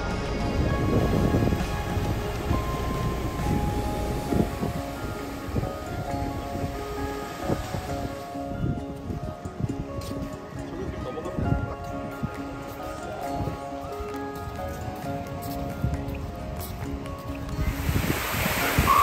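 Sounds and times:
background music with held notes: 0.0 - 19.0
rushing outdoor noise: 0.0 - 19.0.

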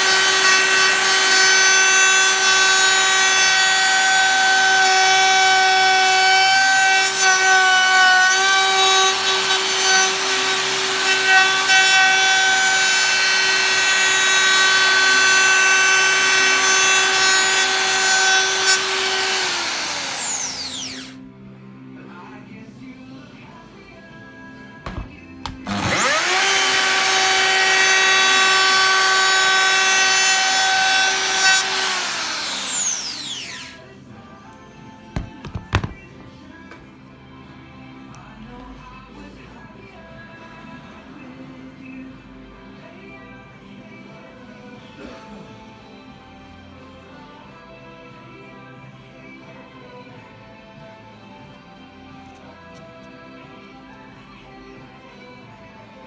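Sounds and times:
router high whine: 8.4 - 21.2, 25.6 - 33.8.

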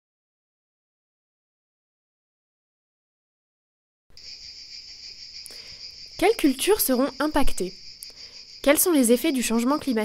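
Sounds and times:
insects chirring: 4.1 - 10.0.

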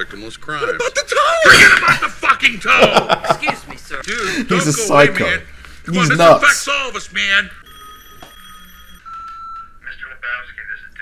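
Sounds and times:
telephone ringing: 7.6 - 9.8.

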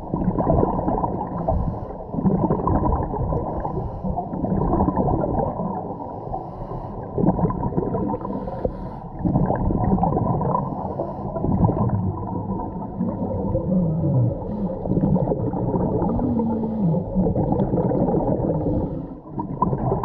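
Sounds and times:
underwater bubbles gurgling: 0.0 - 20.0.

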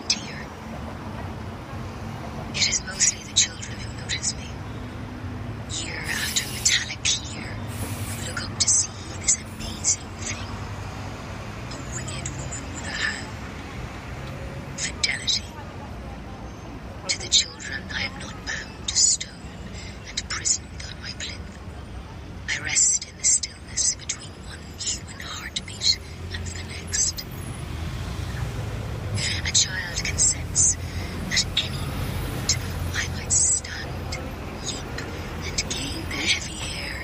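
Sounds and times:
low rumble of city traffic: 0.0 - 37.0
indistinct speech: 2.6 - 4.5, 32.4 - 37.0
faint indistinct talk: 14.3 - 27.4.

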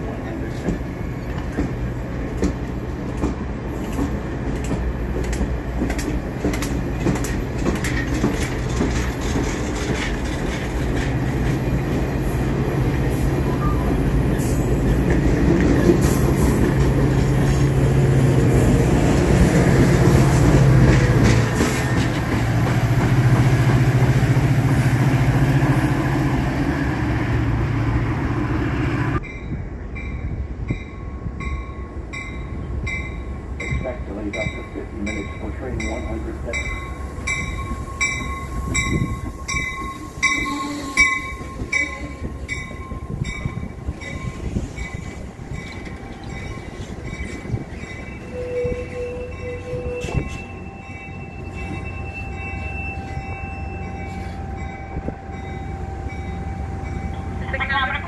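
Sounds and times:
locomotive bell ringing: 29.2 - 58.0.

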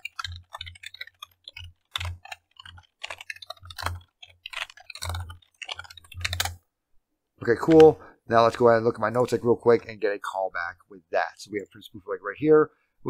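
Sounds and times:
typing on computer keyboard: 0.0 - 6.6.

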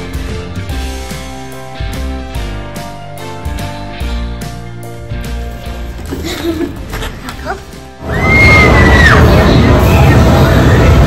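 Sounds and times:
quiet background music: 0.0 - 11.0
arcade game machines din: 8.1 - 11.0.

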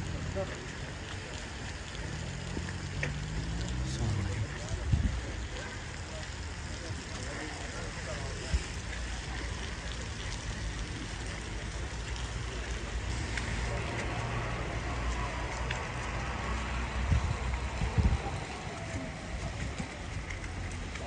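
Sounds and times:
light rain on wet pavement: 0.0 - 21.0.

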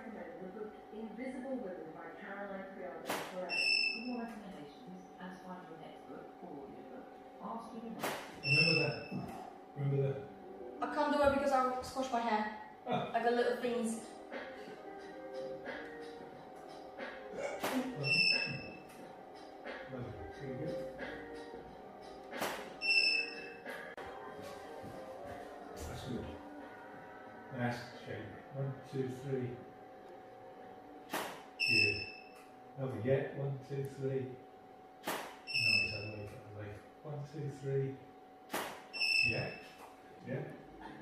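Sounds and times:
electronic beep: 3.5 - 4.2, 8.4 - 9.3, 18.0 - 18.9, 22.8 - 23.6, 31.6 - 32.4, 35.5 - 36.2, 39.0 - 39.8.

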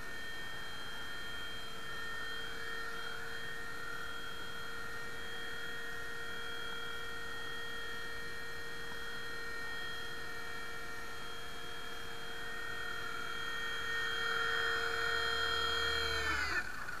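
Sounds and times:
electric motor whining: 0.0 - 17.0.

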